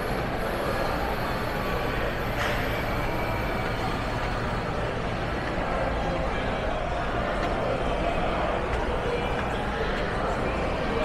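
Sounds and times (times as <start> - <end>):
low rumble of large hall: 0.0 - 11.0.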